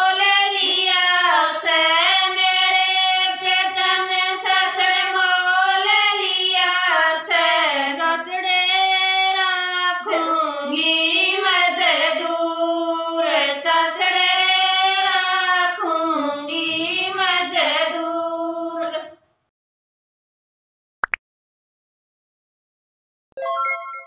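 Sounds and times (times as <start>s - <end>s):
women singing unaccompanied folk song: 0.0s - 19.2s.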